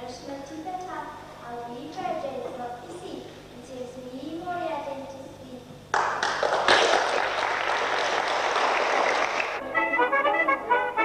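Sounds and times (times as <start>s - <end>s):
audience applauding: 5.9s - 9.6s.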